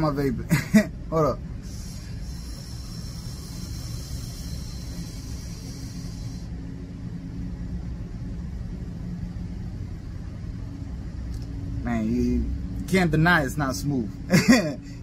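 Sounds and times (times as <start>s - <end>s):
vape airflow hiss and coil sizzle: 1.6s - 6.5s.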